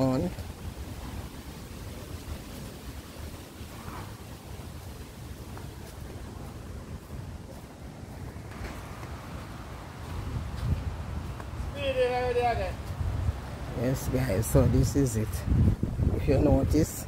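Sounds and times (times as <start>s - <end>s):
wind noise on microphone: 0.0s - 17.0s.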